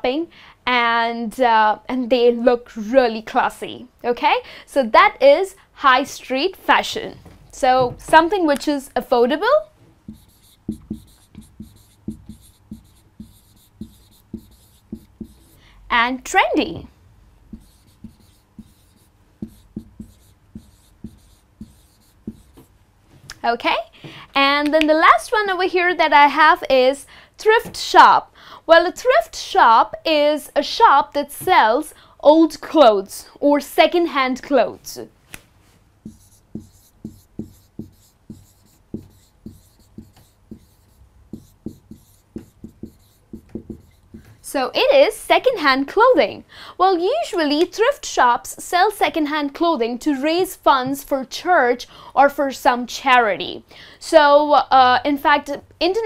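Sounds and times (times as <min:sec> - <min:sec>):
marker pen writing on whiteboard: 0:09.4 - 0:15.6, 0:16.6 - 0:22.8, 0:36.0 - 0:44.5.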